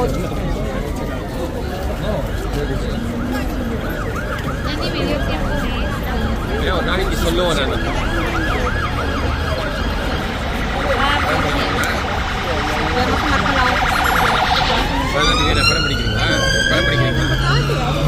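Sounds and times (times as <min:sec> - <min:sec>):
emergency vehicle siren: 0:00.0 - 0:18.0.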